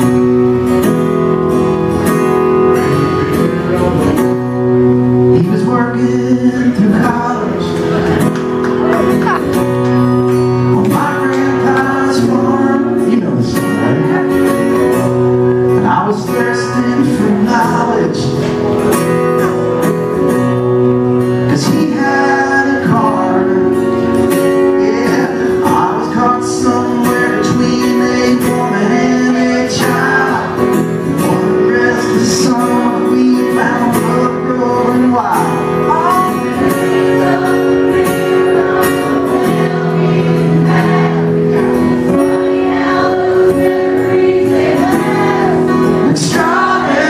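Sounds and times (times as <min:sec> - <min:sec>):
instrumental accompaniment of chords: 0:00.0 - 0:47.0
man singing into a microphone: 0:02.9 - 0:18.9, 0:21.4 - 0:47.0.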